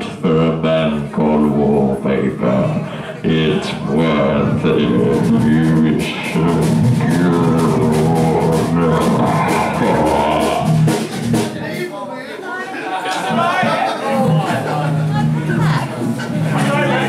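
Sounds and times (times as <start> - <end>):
bass guitar: 0.0 - 11.8, 13.3 - 17.0
person singing: 3.2 - 11.4
drum kit: 3.4 - 11.9, 13.2 - 17.0.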